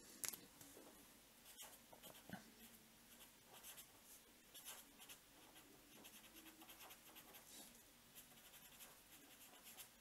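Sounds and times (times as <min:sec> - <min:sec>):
pen scratching on paper: 0:01.5 - 0:02.3, 0:03.2 - 0:03.9, 0:04.5 - 0:07.5, 0:08.2 - 0:10.0.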